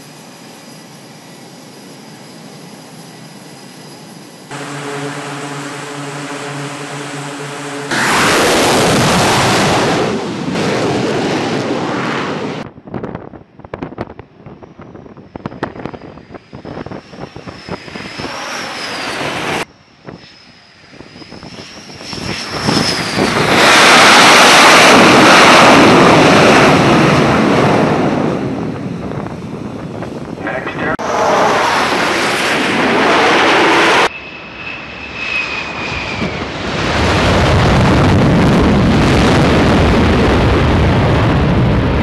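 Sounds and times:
high wavering whine: 0.0 - 10.7, 14.8 - 27.3, 28.4 - 37.0
loud jet engine noise: 0.0 - 42.0.

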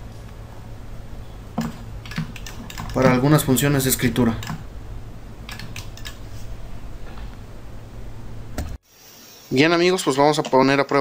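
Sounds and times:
low electrical hum: 0.0 - 11.0
man speaking: 2.9 - 4.5, 9.5 - 11.0.

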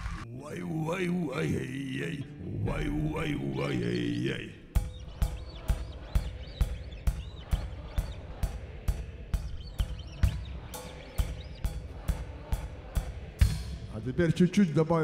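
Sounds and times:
bass drum and cymbal beat: 4.7 - 15.0.

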